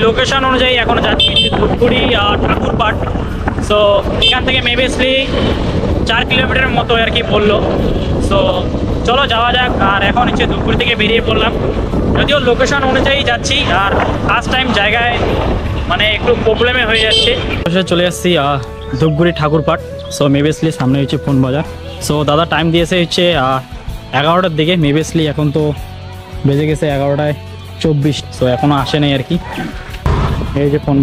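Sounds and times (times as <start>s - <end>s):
man talking: 0.0s - 5.4s, 6.1s - 11.6s, 12.2s - 25.8s, 26.4s - 29.7s, 30.5s - 31.0s
motorcycle wind and road noise: 0.0s - 31.0s.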